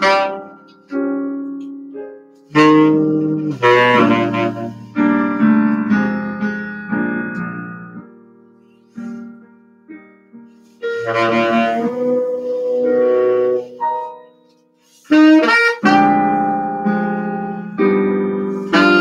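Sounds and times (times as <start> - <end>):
saxophone: 0.0 - 1.2, 2.5 - 5.9, 10.8 - 14.2, 14.8 - 19.0
piano chords: 0.0 - 19.0.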